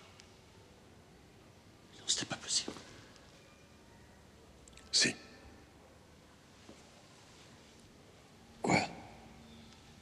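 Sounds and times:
man whispering: 1.9s - 3.0s, 4.8s - 5.4s, 8.6s - 9.4s.

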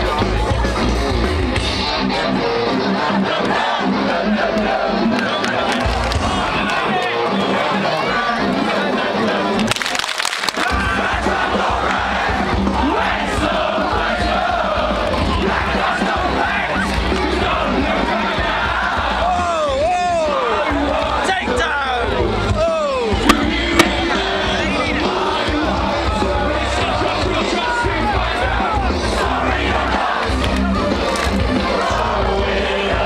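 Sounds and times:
fans yelling and whooping: 0.0s - 33.0s
live band music over pa: 22.3s - 27.8s
heavy bass beat: 23.2s - 24.4s
sharp knocks on microphone: 23.3s - 24.0s.

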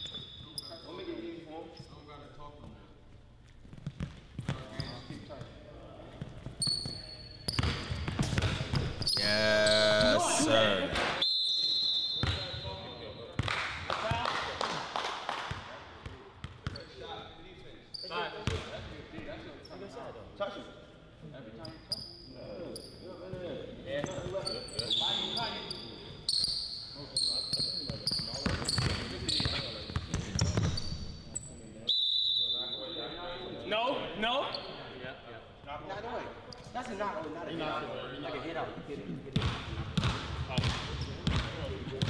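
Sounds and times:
people talking and calling out: 9.2s - 11.2s.

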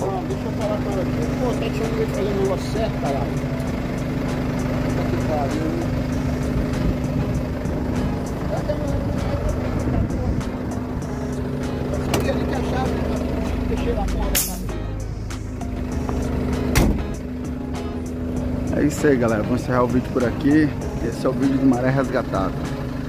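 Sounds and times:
diesel engine idling: 0.0s - 23.0s.

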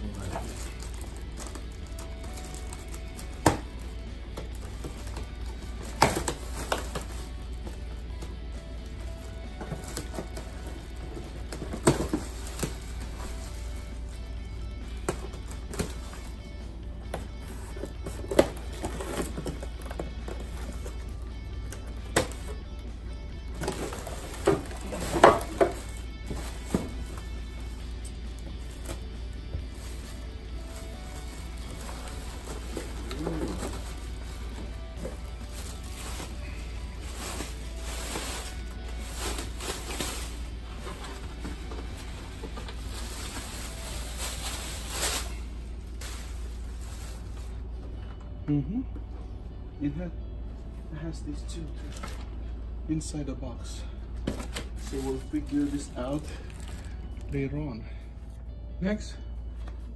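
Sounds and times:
faint background music: 0.0s - 59.9s
plastic crackling: 0.1s - 8.1s, 54.5s - 57.4s.

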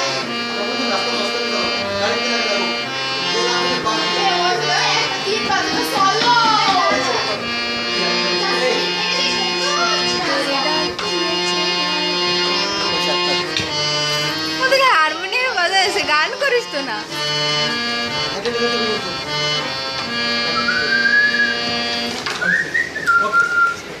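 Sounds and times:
harmonium chords: 0.0s - 24.0s
person whistling: 20.6s - 21.7s, 22.4s - 23.9s.

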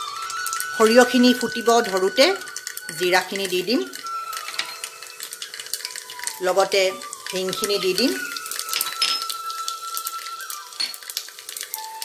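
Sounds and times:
oil sizzling: 0.0s - 12.0s
seeds popping in hot oil: 0.0s - 12.0s.

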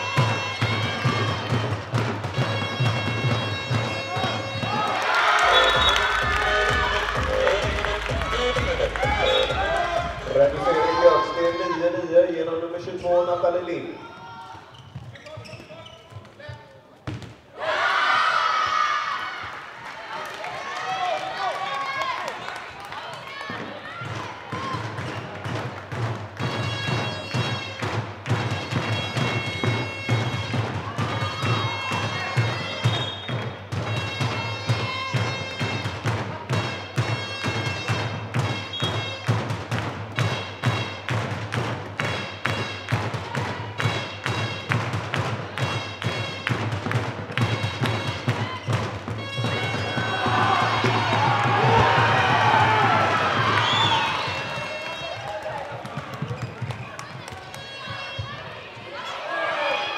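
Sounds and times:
people shouting: 4.1s - 12.0s, 17.6s - 19.4s, 49.5s - 55.8s.

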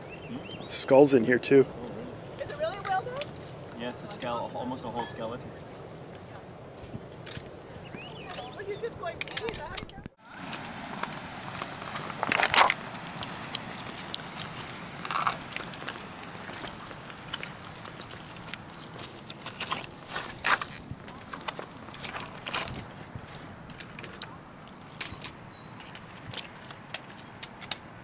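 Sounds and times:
footsteps on beach stones: 2.2s - 27.6s.

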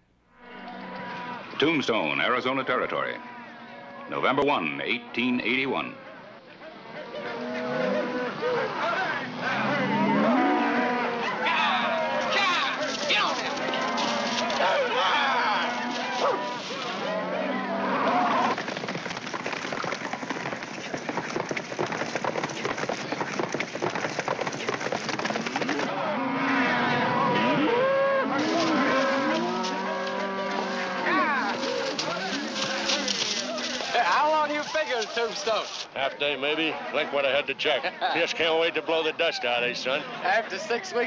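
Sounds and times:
cattle mooing: 0.4s - 1.6s, 2.7s - 18.6s, 25.2s - 34.0s
hooves clattering: 11.4s - 17.2s, 18.0s - 25.9s, 28.3s - 36.0s.

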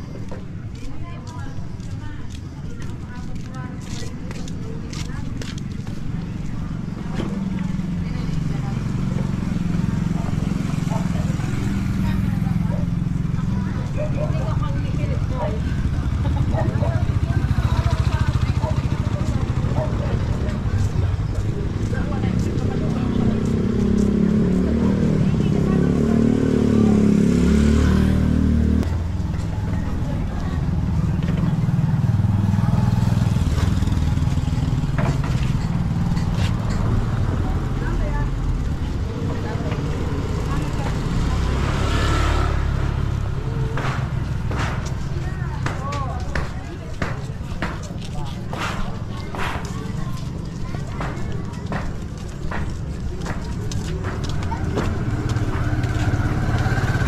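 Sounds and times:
motorcycle engines rumbling: 0.0s - 57.0s.

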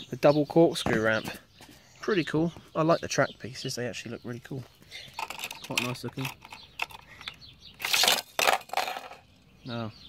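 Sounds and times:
toy car clattering on plastic track: 5.2s - 9.2s.

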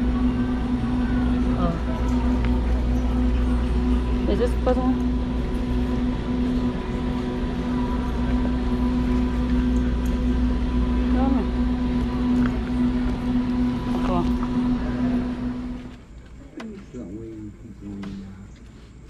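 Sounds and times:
faint voices: 0.0s - 19.0s
steady low hum: 0.0s - 19.0s.

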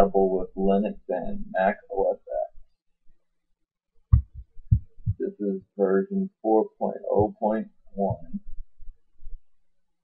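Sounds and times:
dull low thumps: 4.1s - 5.3s, 7.1s - 9.5s.

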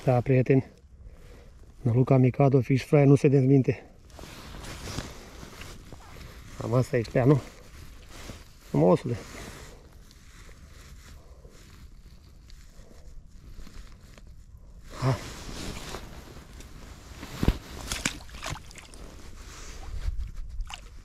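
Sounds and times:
rustling of dry reeds: 4.0s - 21.0s
fish splashing in water: 17.8s - 19.0s
wind rumble on microphone: 19.0s - 21.0s.

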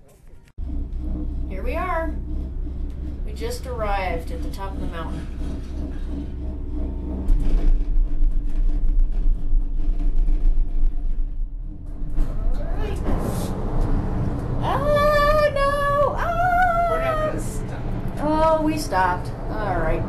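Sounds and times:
station machinery rumble: 0.6s - 20.0s
voice holding drawn-out notes: 14.6s - 20.0s.

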